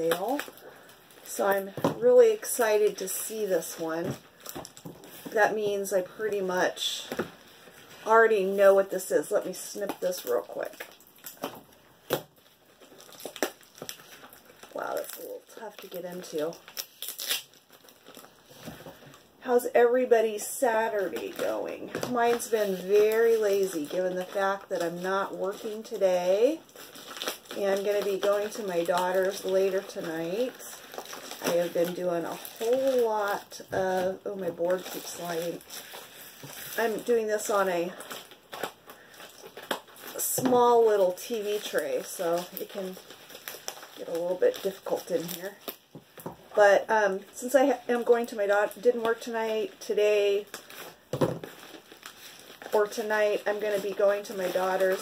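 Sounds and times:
plastic packaging crinkling: 0:00.0 - 0:55.0.

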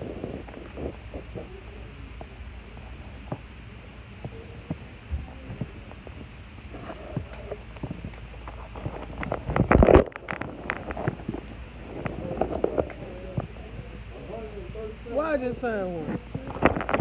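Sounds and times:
phone microphone handling rumble: 0:00.0 - 0:14.9, 0:16.0 - 0:17.0.

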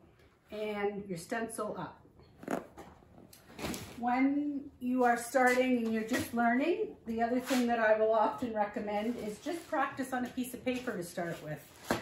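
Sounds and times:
fabric rustling on paper: 0:09.0 - 0:12.0.

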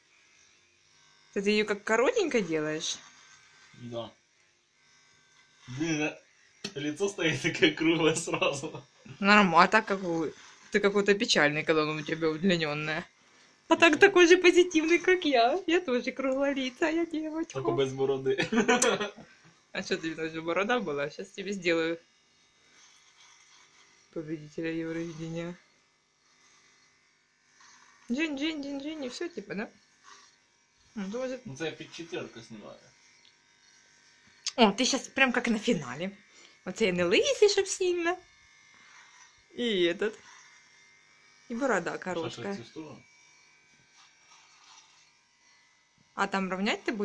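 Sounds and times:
electric beard trimmer buzzing: 0:00.0 - 0:47.0.

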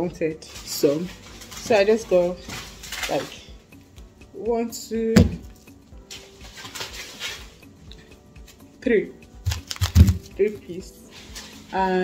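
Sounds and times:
plastic film crinkling: 0:00.5 - 0:03.4, 0:09.4 - 0:12.0.

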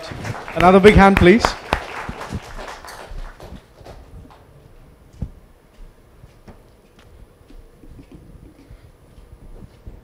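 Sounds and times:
audience applause: 0:00.0 - 0:04.4
scattered single claps: 0:00.0 - 0:04.4.

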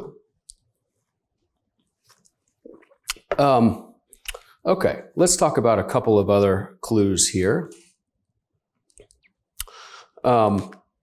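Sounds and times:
short intake of breath: 0:09.6 - 0:10.2.

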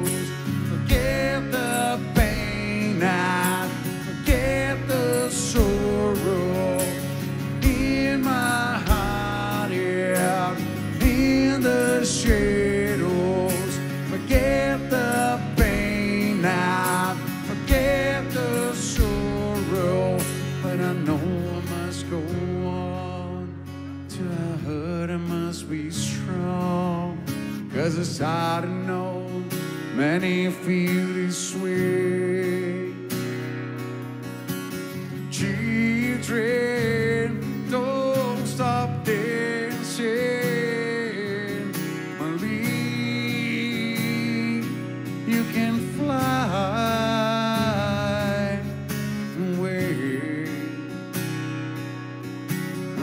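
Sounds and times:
man singing: 0:00.0 - 0:33.2, 0:35.2 - 0:51.1
strummed acoustic guitar: 0:00.0 - 0:53.0.

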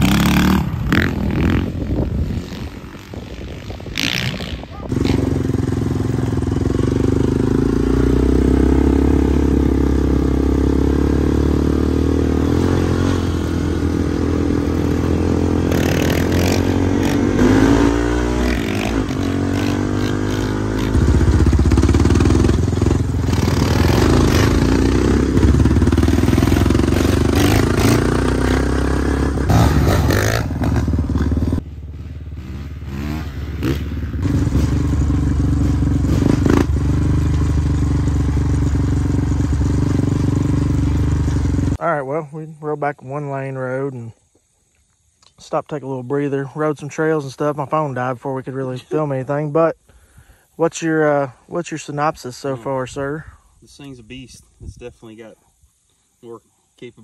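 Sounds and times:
dirt bike engine revving: 0:00.0 - 0:41.8.

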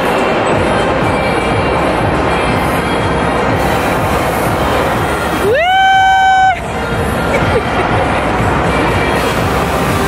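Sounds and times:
amusement park ride din: 0:00.0 - 0:10.0
music: 0:00.0 - 0:10.0.

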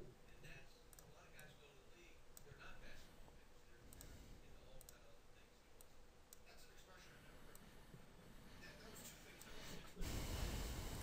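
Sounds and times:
soft computer mouse clicks: 0:00.9 - 0:01.6, 0:03.9 - 0:05.1, 0:05.8 - 0:06.6.

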